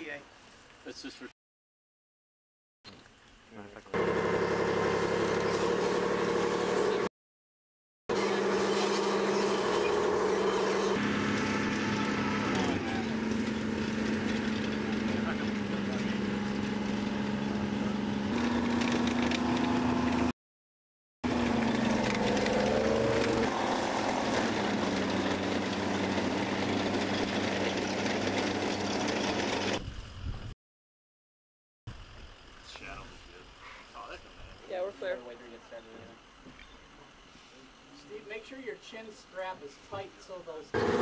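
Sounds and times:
tracked vehicle engine running: 3.9s - 7.1s, 8.1s - 20.3s, 21.2s - 29.8s, 40.7s - 41.0s.

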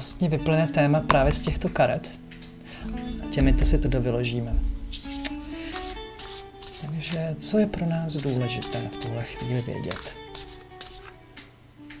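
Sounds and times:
soft background music: 0.0s - 12.0s
cards being shuffled: 4.9s - 11.2s.

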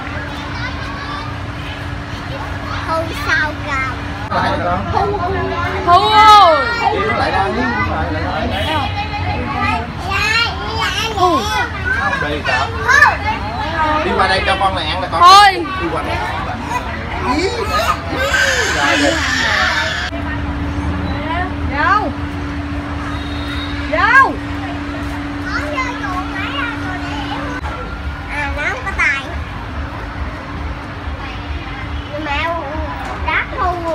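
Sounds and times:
young children talking: 0.0s - 22.2s, 22.9s - 33.9s
children calling out: 9.7s - 13.5s, 16.5s - 20.2s
low background hum: 15.6s - 33.9s.

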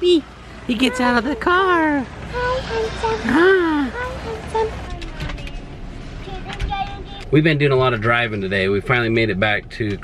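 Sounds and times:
vehicle cabin noise: 0.0s - 10.0s.

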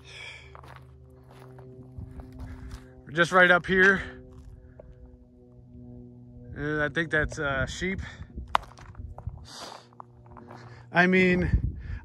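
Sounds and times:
footsteps crunching on gravel: 0.0s - 5.0s, 8.4s - 11.5s
steady low drone: 0.0s - 12.0s.

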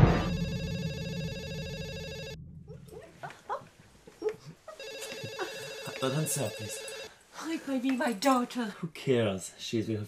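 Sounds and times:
telephone ringing: 0.1s - 2.4s, 4.7s - 7.2s.

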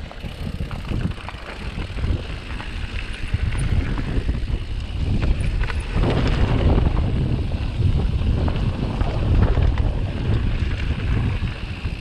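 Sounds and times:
bike clicks and knocks: 0.0s - 12.0s
wind buffeting microphone: 0.0s - 12.0s.

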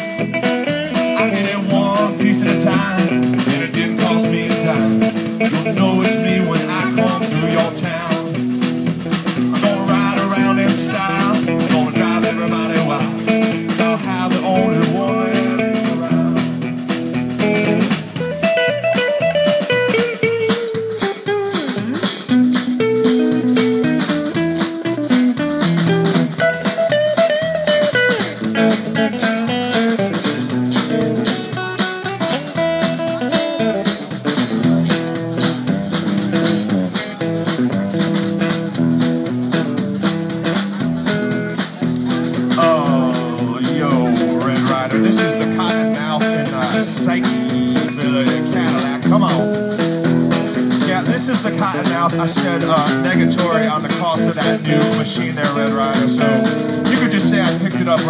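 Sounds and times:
country-rock band playing: 0.0s - 58.0s
electric guitar lead bending notes: 0.0s - 58.0s.

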